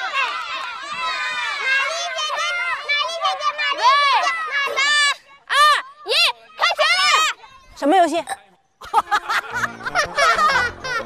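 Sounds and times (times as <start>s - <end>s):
children chattering and calling out: 0.0s - 8.8s.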